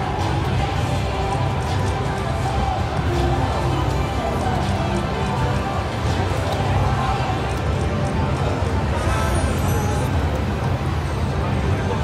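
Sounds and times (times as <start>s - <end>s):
slot machine paying out: 8.8s - 10.5s.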